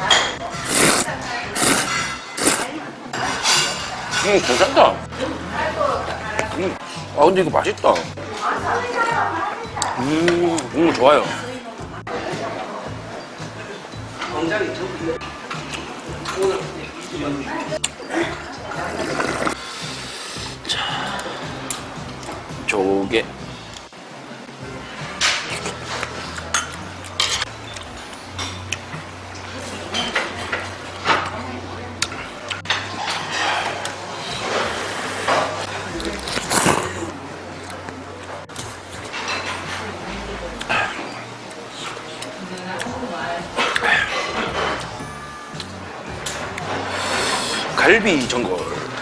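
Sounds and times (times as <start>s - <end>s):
person slurping noodles: 0.6s - 2.7s, 18.9s - 20.6s, 36.4s - 37.1s, 46.8s - 47.7s.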